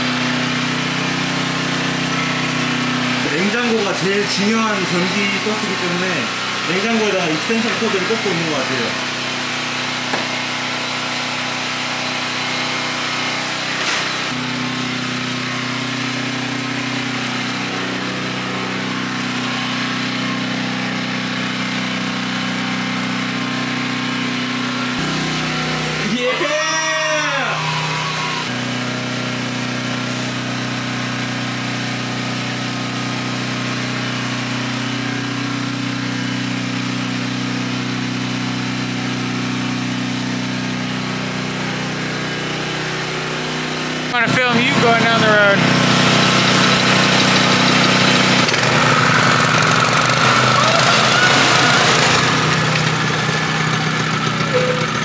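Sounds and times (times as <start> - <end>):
generator humming: 0.0 - 55.0
person cheering: 26.0 - 28.5, 50.2 - 52.0.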